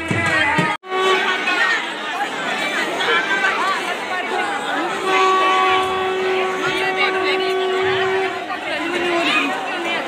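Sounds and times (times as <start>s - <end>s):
crowd babble indoors: 0.0s - 10.0s.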